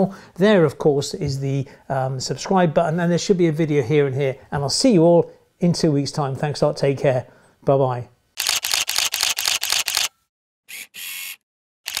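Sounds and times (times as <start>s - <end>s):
camera shutter clicks: 8.4s - 10.1s, 10.7s - 12.0s.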